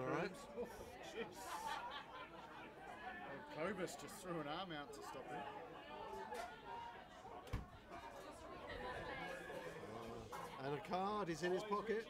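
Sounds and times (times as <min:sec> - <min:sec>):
faint voices chattering: 0:00.0 - 0:12.0.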